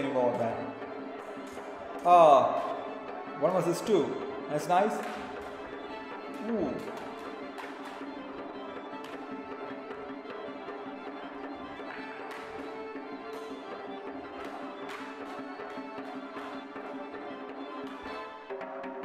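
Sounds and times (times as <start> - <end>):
folk dance music: 0.0 - 19.0.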